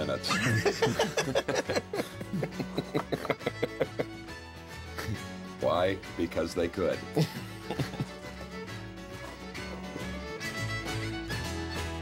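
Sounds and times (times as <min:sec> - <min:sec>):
acoustic guitar: 0:00.0 - 0:12.0
bowed fiddle: 0:00.0 - 0:12.0.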